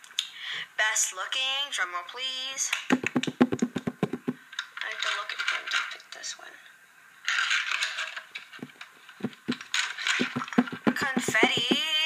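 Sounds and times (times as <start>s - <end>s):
device rubbing against clothing: 2.9s - 4.4s, 8.6s - 12.0s
hand drum roll on surface: 2.9s - 4.4s, 8.6s - 12.0s.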